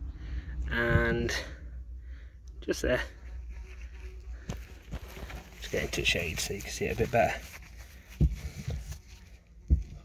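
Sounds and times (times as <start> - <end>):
low steady rumble: 0.0 - 10.0
hand scraping in ash and soil: 3.4 - 9.0.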